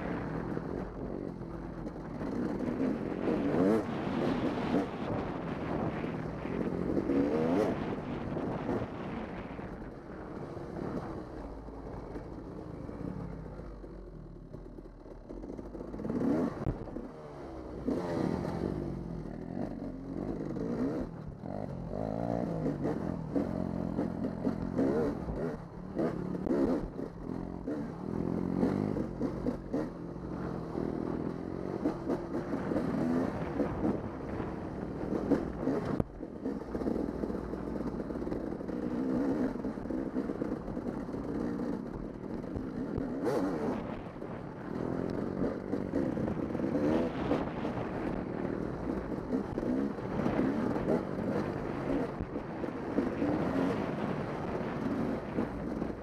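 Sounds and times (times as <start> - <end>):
dirt bike engine revving: 0.0 - 9.7, 15.5 - 56.0.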